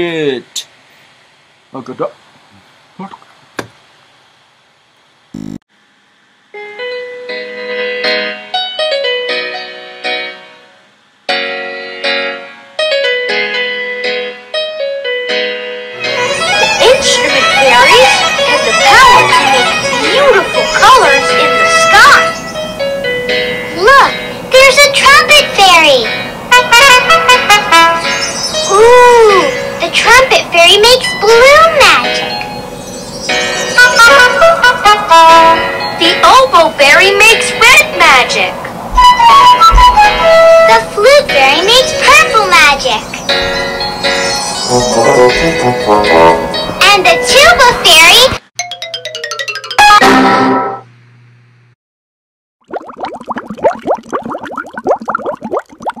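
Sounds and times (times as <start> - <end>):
trumpet playing short notes: 44.7 - 46.6
bubbling bloops and pops: 52.6 - 56.0.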